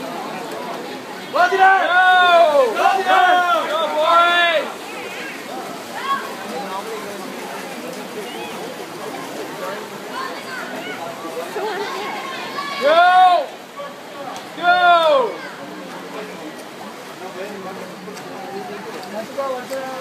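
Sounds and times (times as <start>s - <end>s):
faint scattered voices: 0.0s - 20.0s
swimmers splashing: 0.0s - 20.0s
spectators cheering: 1.3s - 4.8s.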